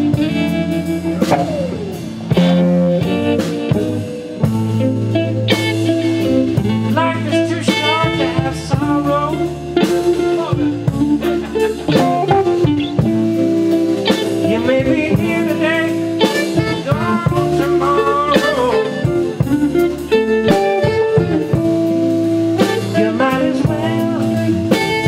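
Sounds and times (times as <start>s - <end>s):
bending lead guitar line: 0.0s - 25.0s
blues band playing: 0.0s - 25.0s.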